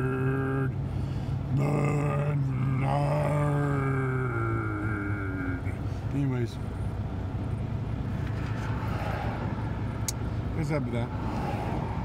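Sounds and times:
diesel truck engine drone: 0.0 - 12.0.

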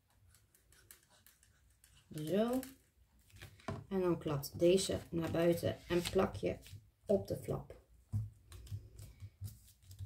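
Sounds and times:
cardstock and glue bottle rustles: 1.0 - 6.9.

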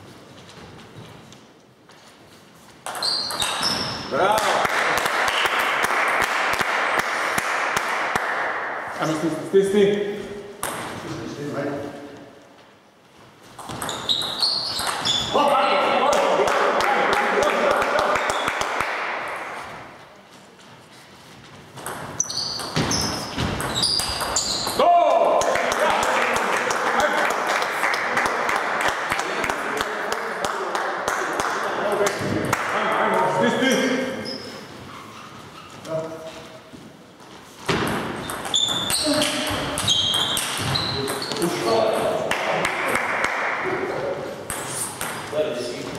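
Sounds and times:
table tennis ball pinging: 2.8 - 3.8, 13.6 - 15.3, 21.8 - 24.8, 37.7 - 42.2
people clapping: 4.2 - 8.6, 16.0 - 19.4, 25.0 - 32.8, 42.3 - 43.8
men talking: 9.0 - 10.4, 11.0 - 12.1, 15.3 - 18.3, 24.8 - 34.3, 40.9 - 44.5, 45.3 - 45.9.

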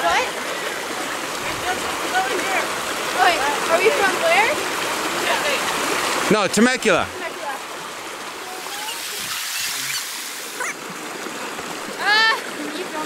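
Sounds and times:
creek rushing over boulders: 0.0 - 13.0.

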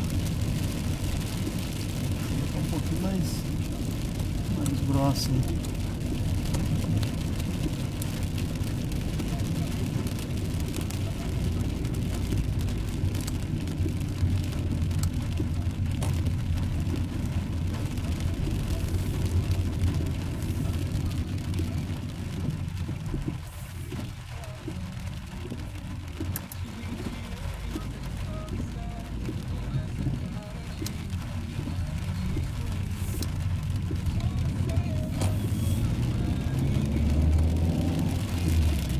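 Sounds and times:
car engine and tyres rumbling: 0.0 - 38.9
light ticks of rain: 0.0 - 38.9.

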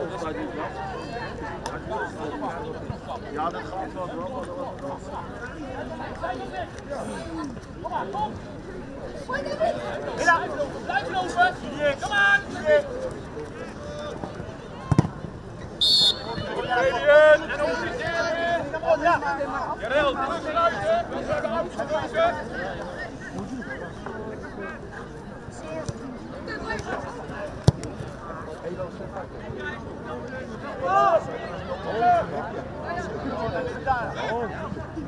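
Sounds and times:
faint voices: 0.0 - 35.0
football kick thump: 14.8 - 15.2.

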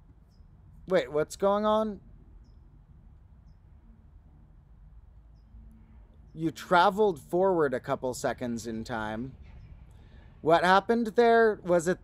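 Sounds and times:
small bird chirping: 0.1 - 0.8, 2.3 - 3.9, 5.2 - 6.8.

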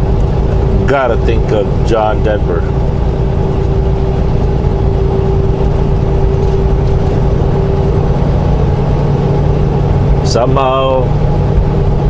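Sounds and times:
faint steady hum: 0.0 - 12.0
truck engine and road drone: 0.0 - 12.0.

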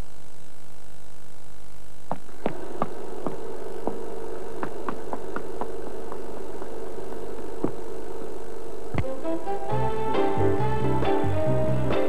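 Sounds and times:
film crackles and pops: 0.0 - 9.1
film soundtrack hum and hiss: 0.0 - 12.0.

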